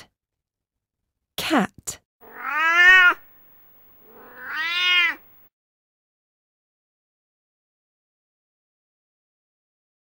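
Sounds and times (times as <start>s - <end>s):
cat meowing: 2.2s - 3.3s, 4.0s - 5.4s.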